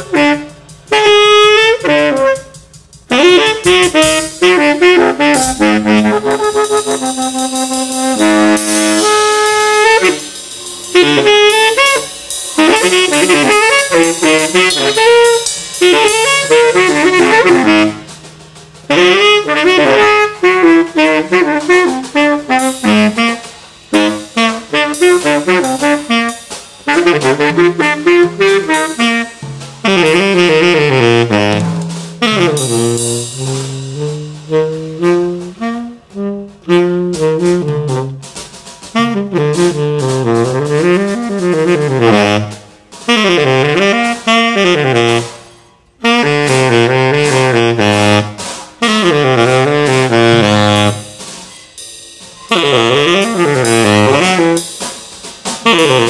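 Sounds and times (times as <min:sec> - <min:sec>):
drum kit with cymbals: 0:00.0 - 0:56.0
tenor saxophone jazz runs: 0:00.0 - 0:56.0.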